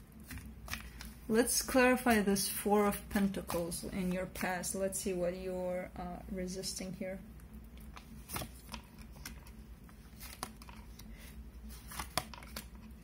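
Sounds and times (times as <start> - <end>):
cards being shuffled: 0.2 - 2.2, 7.7 - 13.0.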